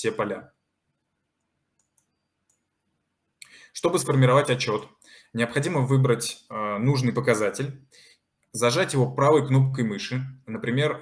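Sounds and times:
computer mouse clicks: 1.4 - 2.7.

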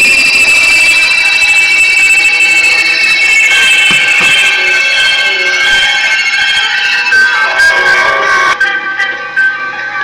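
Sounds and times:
noise music with high tones: 0.0 - 10.0.

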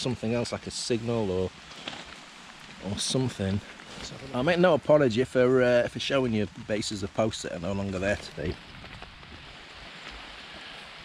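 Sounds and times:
light rain: 0.0 - 11.0
wind: 0.0 - 11.0.

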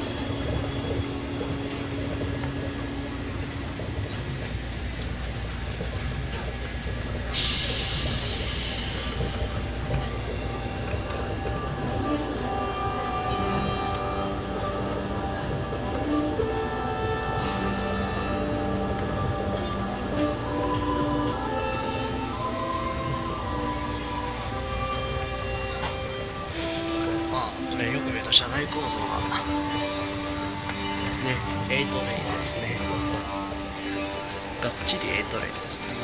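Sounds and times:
held musical tones: 0.0 - 36.0
monorail low rumble: 0.0 - 36.0.

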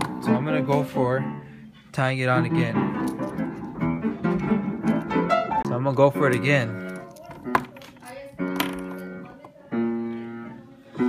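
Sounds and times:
piano chords: 0.0 - 7.8, 8.4 - 11.0.

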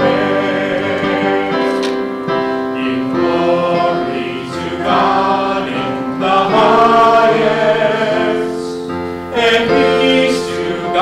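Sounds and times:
choir and congregation singing hymn: 0.0 - 11.0.

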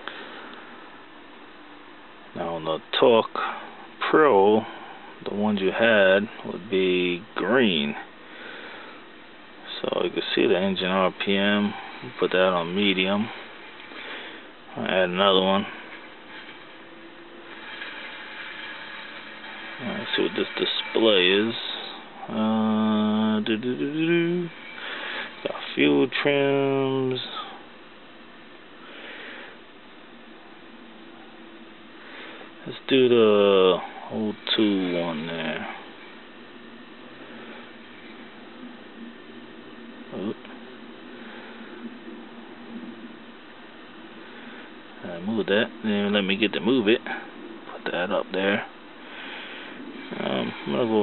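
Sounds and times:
low background hiss: 0.0 - 51.0.

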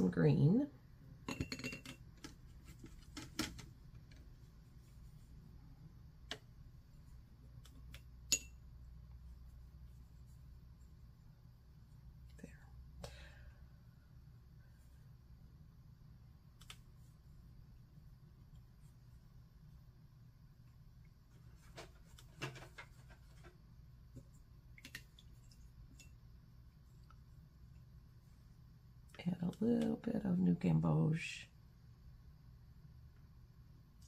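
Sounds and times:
low steady hum: 0.0 - 34.0.

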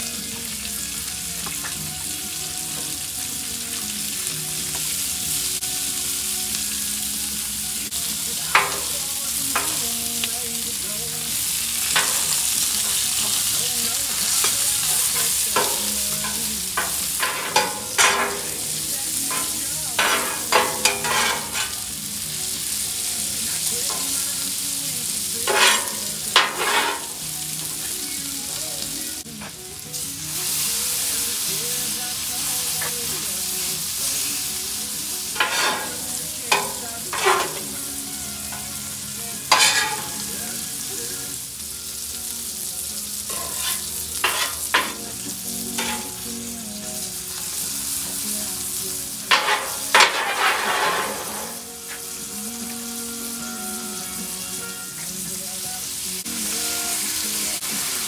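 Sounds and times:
onions sizzling on griddle: 0.0 - 58.0
metal scraper scraping steel plate: 15.2 - 18.7, 19.3 - 21.8, 25.5 - 27.2, 35.4 - 37.7, 39.5 - 40.2, 43.3 - 45.0, 45.8 - 46.2, 49.3 - 51.6.

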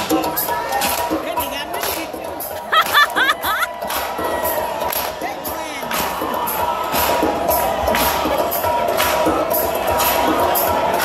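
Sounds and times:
loud dance music: 0.0 - 11.0
crowd cheering: 2.4 - 11.0.

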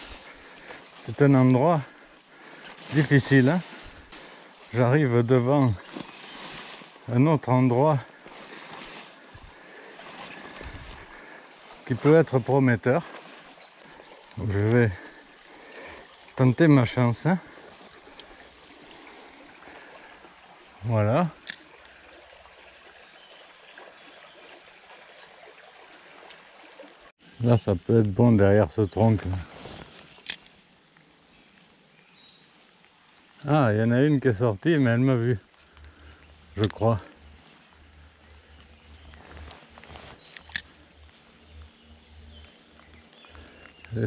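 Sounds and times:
stream flowing: 0.0 - 27.2, 28.4 - 44.0
light rain hiss: 0.0 - 44.0
man speaking: 1.0 - 2.0, 2.9 - 3.8, 4.7 - 5.9, 7.1 - 8.1, 11.8 - 13.2, 14.4 - 15.1, 36.6 - 37.1.

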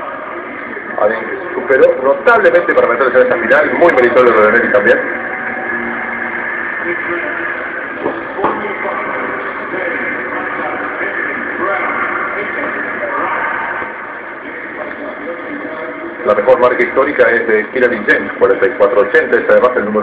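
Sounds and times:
crowd hubbub: 0.0 - 17.0.

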